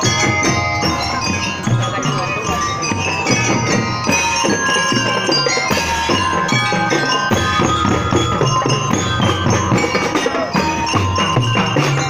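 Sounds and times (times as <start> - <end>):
bell lyre notes: 0.0 - 12.0
steady drumbeats: 0.0 - 12.0.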